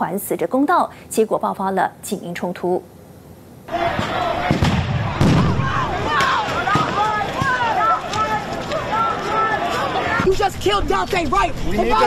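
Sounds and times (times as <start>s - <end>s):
sharp bangs: 3.7s - 8.3s
crowd shouting: 3.7s - 12.0s.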